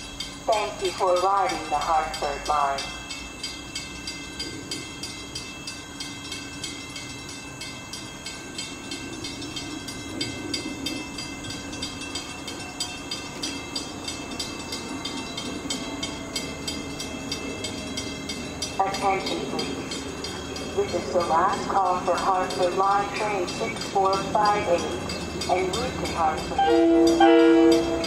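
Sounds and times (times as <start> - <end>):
bell ringing rapidly: 0.0 - 28.0
diesel train rumble: 0.0 - 28.0.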